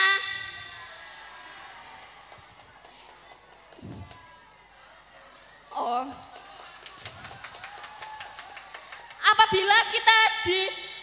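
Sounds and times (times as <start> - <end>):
girl's voice through pa system: 0.0 - 0.8.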